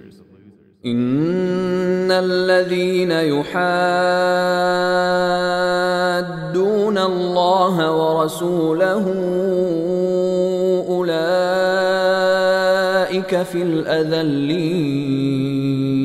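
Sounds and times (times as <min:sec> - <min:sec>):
man reciting melodically: 0:00.0 - 0:16.0.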